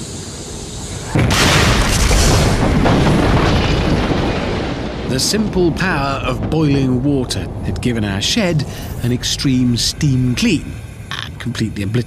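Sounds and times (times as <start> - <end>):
steam explosion blast: 0.0 - 11.1
dense steam roar: 0.0 - 12.0.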